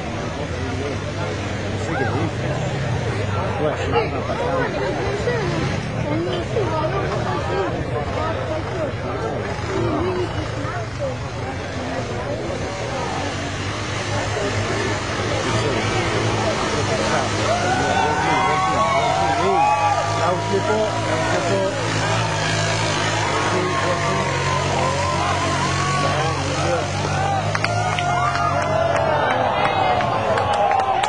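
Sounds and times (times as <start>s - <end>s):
people talking: 0.0s - 31.0s
quad bike engine running: 0.0s - 31.0s
spectators chattering: 0.0s - 31.0s.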